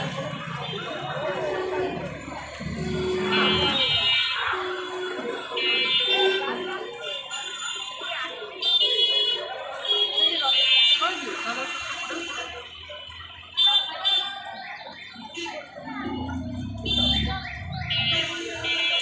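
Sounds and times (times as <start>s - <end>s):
people talking: 0.0s - 19.0s.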